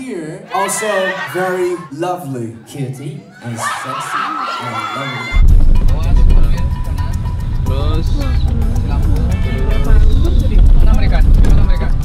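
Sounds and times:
music with a beat: 5.4 - 12.0
road rumble inside van: 5.8 - 12.0.

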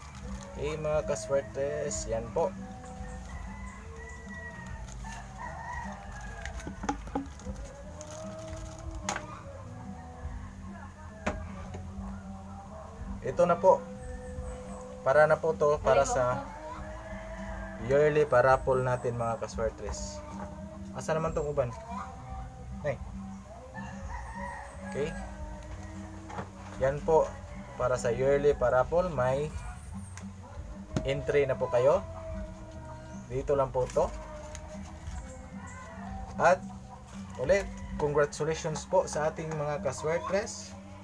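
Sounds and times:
rooster crowing: 0.0 - 13.0, 15.9 - 18.6, 23.5 - 28.7, 33.9 - 39.6
paper slips clicking into plastic cup: 3.0 - 9.2.

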